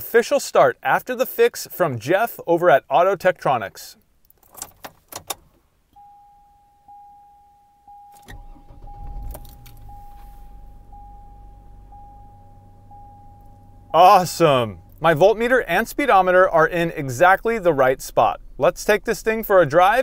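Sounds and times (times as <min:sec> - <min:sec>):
ignition key jangling and clicking: 0:04.2 - 0:05.6, 0:08.0 - 0:13.7
dashboard warning chime dinging: 0:05.9 - 0:18.6
car engine cranking and idling: 0:07.9 - 0:20.0.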